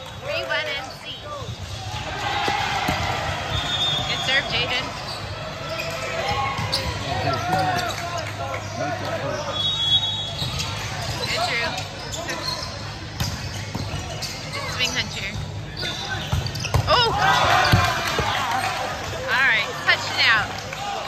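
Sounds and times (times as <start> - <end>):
sneakers squeaking on court floor: 0.0 - 20.0
volleyball being struck: 2.4 - 3.2
people shouting: 16.9 - 19.6.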